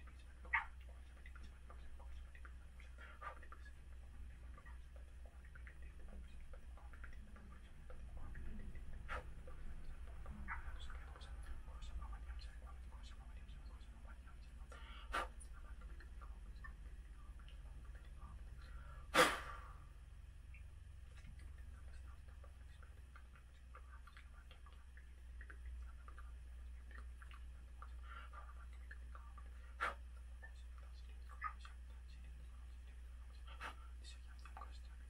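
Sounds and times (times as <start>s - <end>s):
man whispering: 0.0s - 19.9s, 21.1s - 35.0s
steady low hum: 0.0s - 35.0s
forceful puff of breath: 19.1s - 19.7s.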